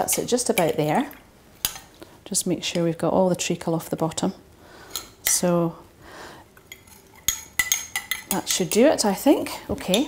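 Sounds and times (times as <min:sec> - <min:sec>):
spoon stirring and scraping: 0:00.0 - 0:02.1, 0:04.0 - 0:05.5, 0:06.5 - 0:10.0.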